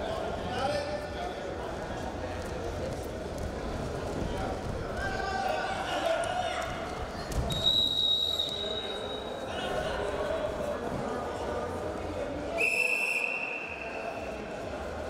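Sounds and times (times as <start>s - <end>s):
murmur of voices: 0.0s - 15.0s
referee's whistle blasts: 7.5s - 9.4s, 12.6s - 14.2s.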